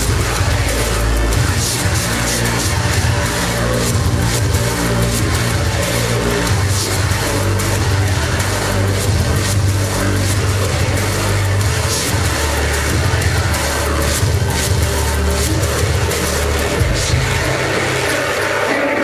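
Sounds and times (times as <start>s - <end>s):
heavy bass line: 0.0s - 19.0s
industrial electronic music: 0.0s - 19.0s.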